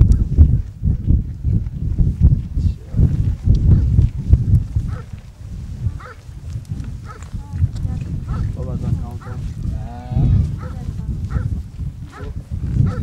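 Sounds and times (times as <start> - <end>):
low rumble: 0.0 - 12.8.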